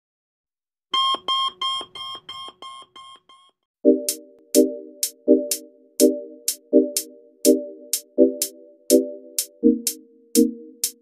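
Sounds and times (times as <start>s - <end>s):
electronic alarm beeping: 0.9s - 3.6s.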